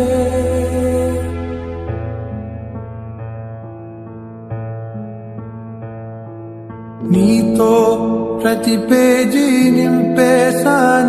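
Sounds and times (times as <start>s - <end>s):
person singing ornamented melody: 7.0s - 11.0s.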